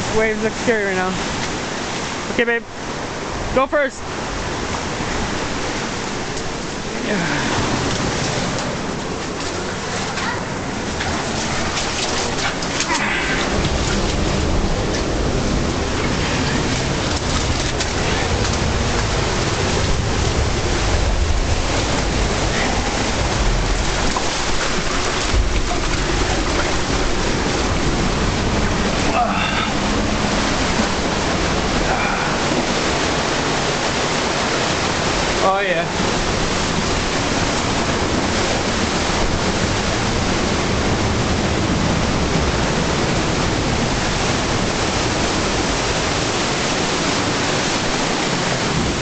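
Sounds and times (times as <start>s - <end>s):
ocean surf rushing into cave: 0.0s - 49.0s.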